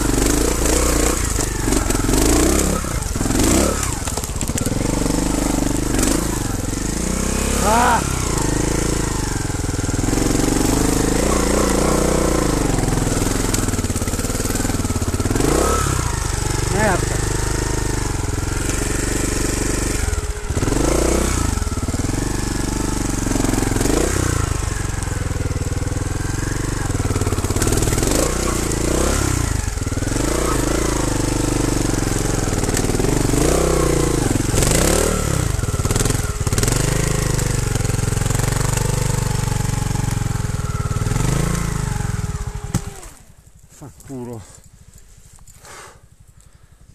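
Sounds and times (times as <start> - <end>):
motorcycle engine throttle blips: 0.0 - 46.9.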